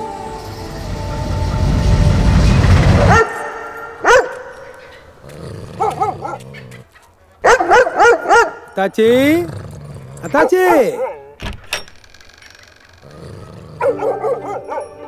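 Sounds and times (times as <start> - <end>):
loud deep rushing noise: 0.0 - 5.2
dogs barking: 3.1 - 11.4, 13.7 - 15.0.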